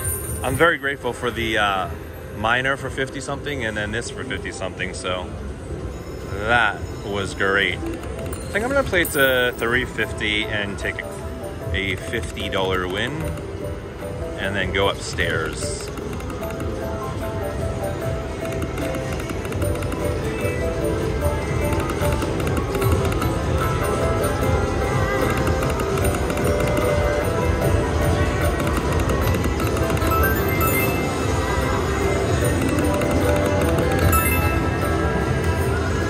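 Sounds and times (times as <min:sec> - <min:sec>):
slot machine music and jingles: 0:00.0 - 0:03.1, 0:05.9 - 0:36.0.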